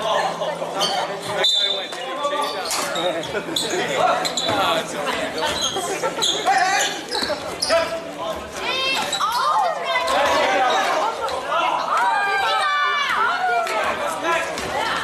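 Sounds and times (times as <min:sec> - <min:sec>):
spectators talking: 0:00.0 - 0:15.0.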